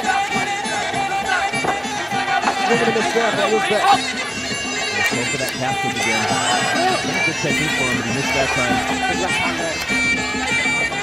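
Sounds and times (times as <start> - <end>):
reed oboe nasal melody: 0.0 - 11.0.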